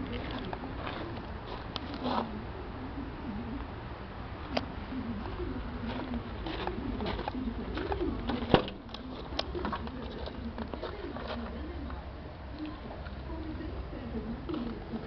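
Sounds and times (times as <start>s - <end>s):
pigeons cooing: 0.0s - 15.0s
van door click: 8.3s - 8.8s.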